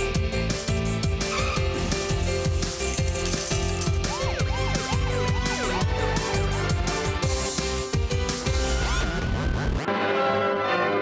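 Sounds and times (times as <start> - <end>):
upbeat theme music: 0.0 - 11.0.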